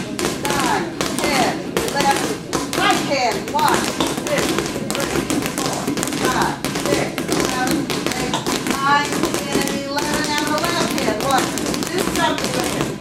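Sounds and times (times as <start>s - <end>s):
balls bouncing on hard floor: 0.0s - 13.0s.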